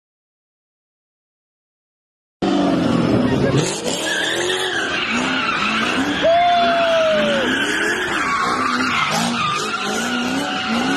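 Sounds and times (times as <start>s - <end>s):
car engine revving: 2.4s - 10.9s
tyres squealing and skidding: 2.5s - 10.9s.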